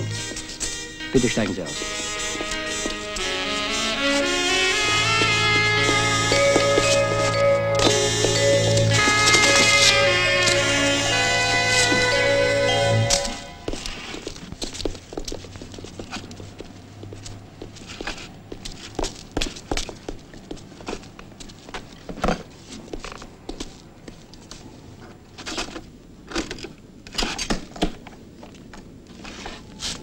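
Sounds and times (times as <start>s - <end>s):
footsteps: 0.0s - 24.8s.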